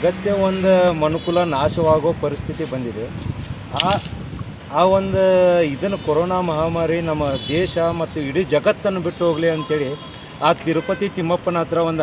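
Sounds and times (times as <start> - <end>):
wind rumbling on microphone: 0.0 - 8.6.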